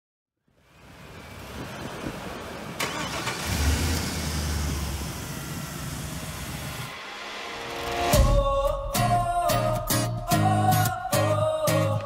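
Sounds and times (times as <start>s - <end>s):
truck engine cranking and running: 0.9s - 6.9s.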